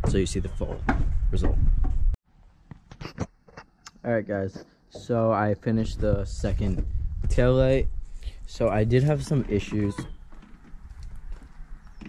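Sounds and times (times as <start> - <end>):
low rumble on microphone: 0.0 - 2.2, 5.6 - 12.0.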